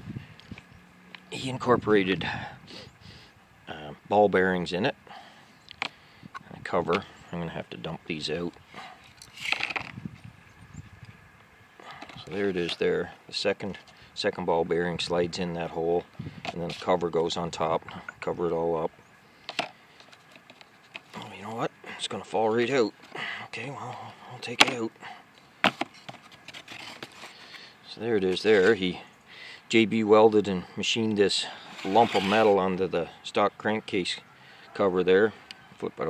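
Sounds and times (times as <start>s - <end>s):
metal parts scraping on cardboard: 8.8s - 10.0s, 11.8s - 12.9s, 19.4s - 21.2s, 25.6s - 27.6s, 28.2s - 28.8s, 31.5s - 32.7s.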